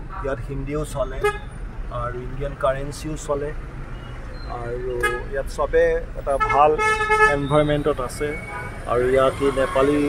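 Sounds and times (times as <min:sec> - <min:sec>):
engine and road rumble: 0:00.0 - 0:10.0
car horns tooting: 0:01.0 - 0:01.6, 0:04.0 - 0:05.5, 0:06.3 - 0:10.0.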